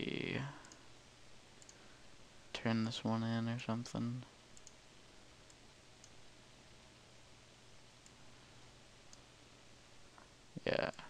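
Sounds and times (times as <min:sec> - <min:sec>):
computer mouse clicks: 0:00.6 - 0:00.8, 0:01.6 - 0:01.8, 0:04.6 - 0:04.8, 0:05.4 - 0:06.2.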